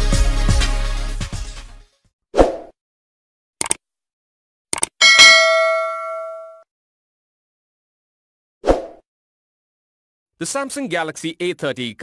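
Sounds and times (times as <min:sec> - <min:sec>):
notification bell ding: 0:05.0 - 0:06.6.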